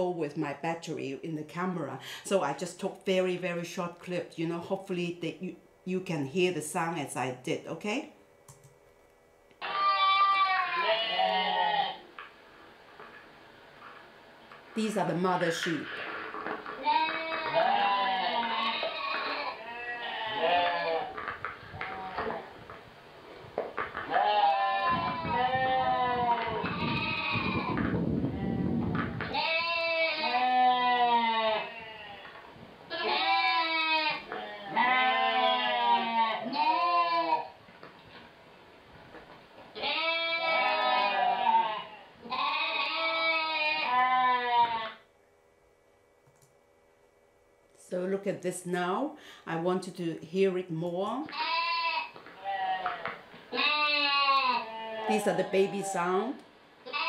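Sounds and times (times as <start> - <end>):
sheep bleating: 9.6 - 12.1, 15.7 - 21.2, 21.8 - 22.5, 24.1 - 37.6, 39.8 - 45.0, 51.3 - 56.2.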